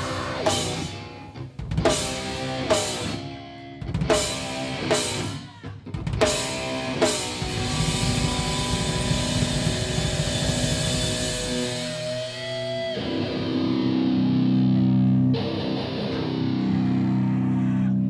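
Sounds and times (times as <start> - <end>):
heavy rock band playing: 0.0 - 18.0.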